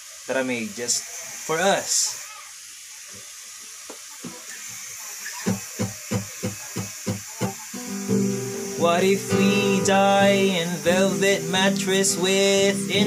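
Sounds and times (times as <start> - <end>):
faint steady hiss: 0.0 - 13.0
acoustic guitar picked: 5.5 - 13.0.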